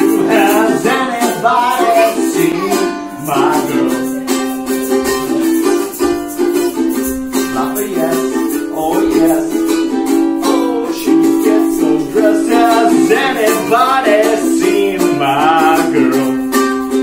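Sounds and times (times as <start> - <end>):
ukulele strumming chords: 0.0 - 17.0.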